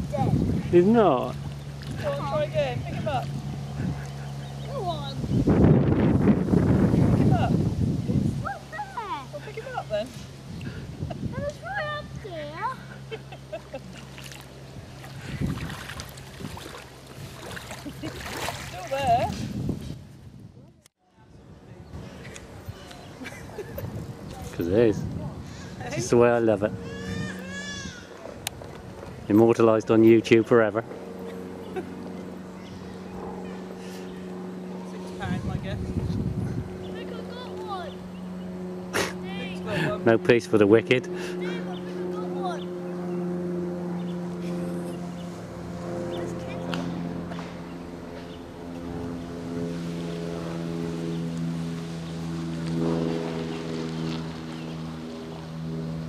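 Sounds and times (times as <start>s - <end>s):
outdoor background noise: 0.0s - 56.0s
steady low hum: 0.0s - 56.0s.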